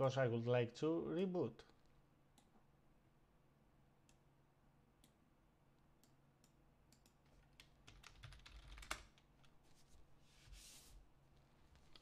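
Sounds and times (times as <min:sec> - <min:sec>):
computer keyboard typing: 0:06.9 - 0:09.2.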